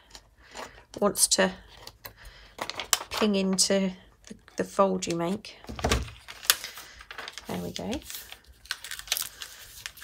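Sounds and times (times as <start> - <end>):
paper rustling and crinkling: 1.6 - 3.6, 5.6 - 10.0.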